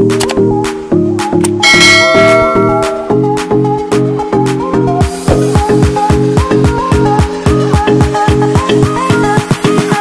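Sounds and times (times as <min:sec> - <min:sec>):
upbeat electronic music: 0:01.2 - 0:04.2
bell chime: 0:01.6 - 0:03.7.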